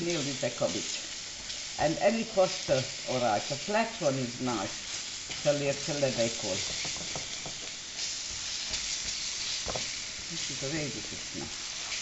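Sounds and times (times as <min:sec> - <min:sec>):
cabbage sizzling in hot oil: 0:00.0 - 0:12.0
wooden spoon stirring in pan: 0:00.0 - 0:12.0.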